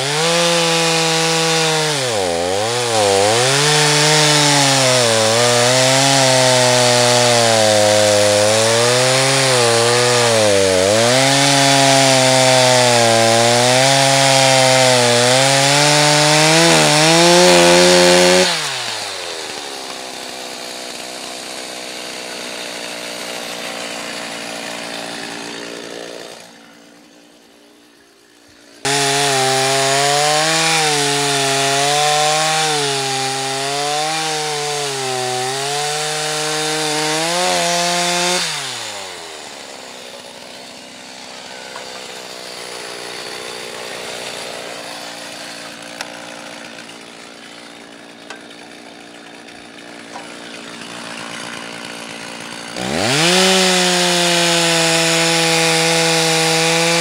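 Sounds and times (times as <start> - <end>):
chainsaw cutting wood: 0.0 - 57.0.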